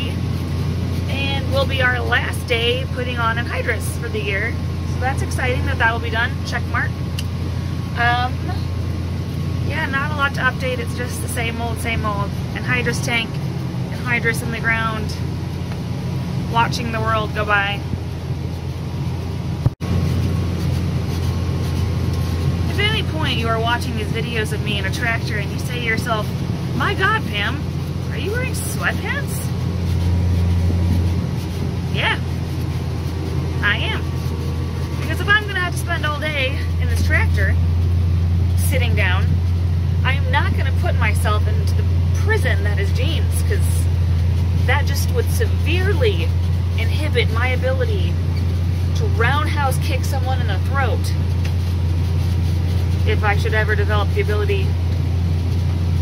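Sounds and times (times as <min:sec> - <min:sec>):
tractor engine droning: 0:00.0 - 0:56.0.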